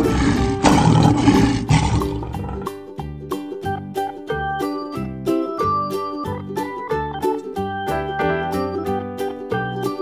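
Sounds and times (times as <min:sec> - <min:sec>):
lion roar: 0:00.0 - 0:02.8
cheerful children's music: 0:02.4 - 0:10.0.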